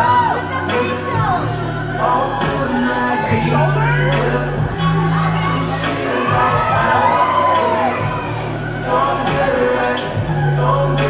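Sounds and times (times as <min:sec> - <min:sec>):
audience cheering and shouting: 0:00.0 - 0:11.0
hip hop track: 0:00.0 - 0:11.0.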